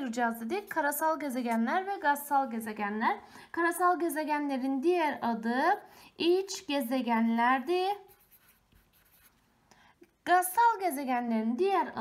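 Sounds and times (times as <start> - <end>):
marker pen scratching on paper: 7.7 - 9.5.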